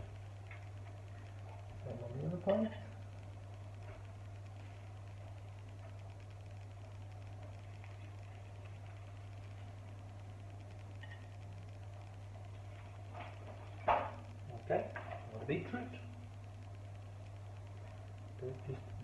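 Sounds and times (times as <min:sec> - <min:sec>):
low hum: 0:00.0 - 0:19.0.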